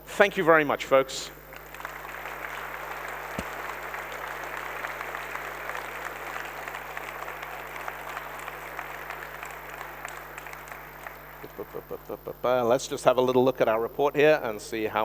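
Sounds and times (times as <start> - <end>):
audience applauding: 1.4 - 12.4.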